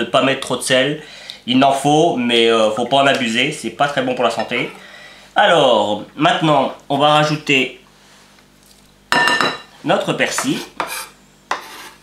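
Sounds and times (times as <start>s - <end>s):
knife clinking on glass bowl: 9.2s - 9.7s
knife scraping herbs into bowl: 10.4s - 12.0s.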